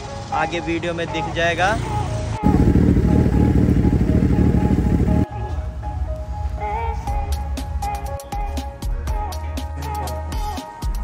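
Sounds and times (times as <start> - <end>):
background music: 0.0 - 11.0
motorcycle engine running: 0.1 - 5.3.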